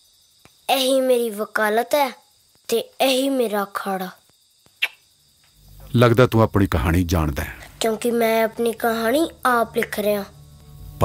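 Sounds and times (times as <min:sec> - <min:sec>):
crickets chirring: 0:00.0 - 0:11.0
child speaking: 0:00.7 - 0:04.2, 0:07.6 - 0:10.4
low hum: 0:05.6 - 0:08.1, 0:08.8 - 0:11.0.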